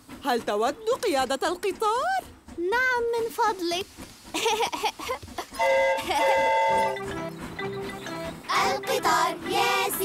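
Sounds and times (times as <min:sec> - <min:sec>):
cartoon steam locomotive whistle: 0:05.6 - 0:10.0.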